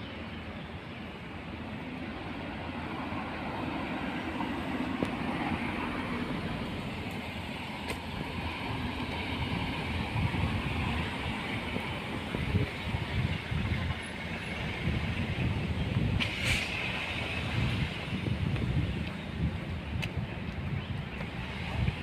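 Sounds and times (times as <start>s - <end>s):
passing vehicles rushing: 1.1s - 22.0s.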